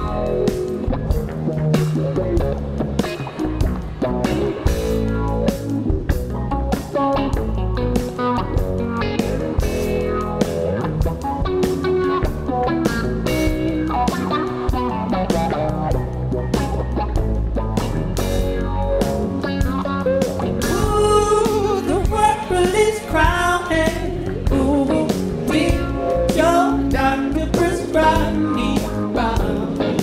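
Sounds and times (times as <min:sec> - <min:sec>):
bass guitar: 0:00.0 - 0:30.0
electric guitar: 0:00.0 - 0:30.0
person singing: 0:20.6 - 0:30.0.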